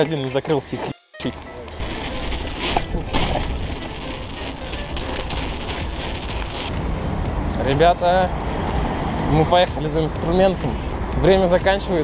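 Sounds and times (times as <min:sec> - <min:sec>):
background music: 0:00.0 - 0:12.0
wind noise on microphone: 0:01.4 - 0:11.2.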